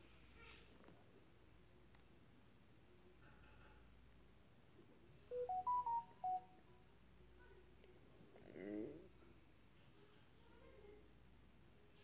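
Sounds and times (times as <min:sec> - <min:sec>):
short electronic beeping tune: 0:05.3 - 0:06.4.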